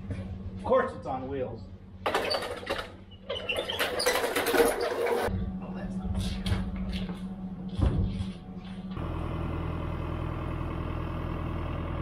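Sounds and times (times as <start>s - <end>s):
metal bucket rattling on a dolly: 2.1s - 5.3s
truck engine idling: 6.7s - 12.0s.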